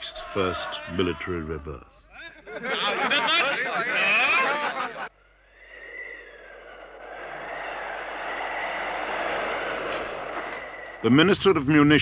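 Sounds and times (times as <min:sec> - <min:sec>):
faint high whistling tone: 0:05.2 - 0:11.4
blizzard wind blowing: 0:05.2 - 0:12.0.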